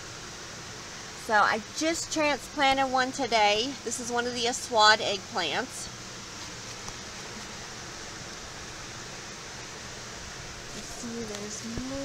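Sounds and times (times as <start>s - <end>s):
steady rushing hiss: 0.0s - 12.0s.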